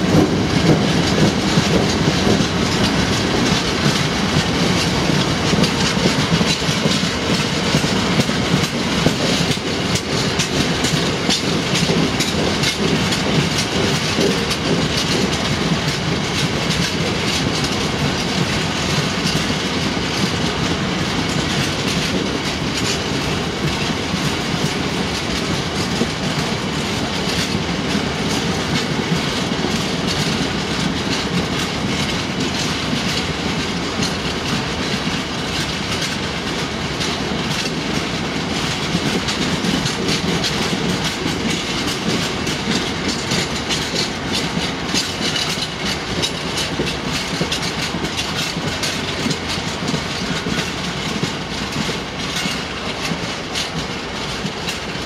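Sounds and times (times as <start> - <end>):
clickety-clack of rail joints: 0.0 - 55.0
train wheels rolling on rail: 0.0 - 55.0.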